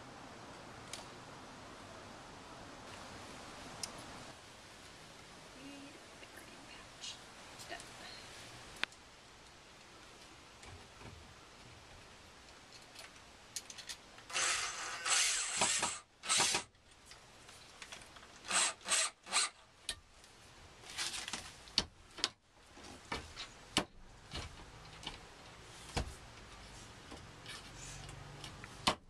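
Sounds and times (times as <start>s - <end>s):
cordless drill into wood: 14.3s - 16.7s, 18.5s - 19.6s.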